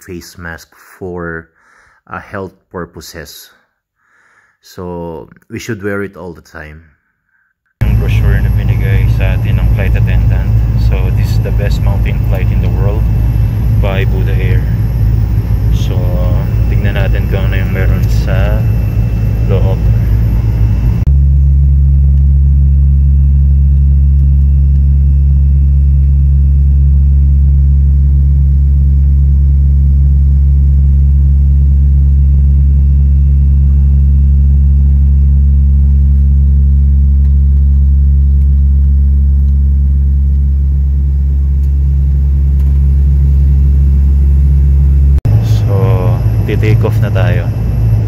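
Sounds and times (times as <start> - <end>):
turboprop engines droning in cabin: 7.8 - 48.0.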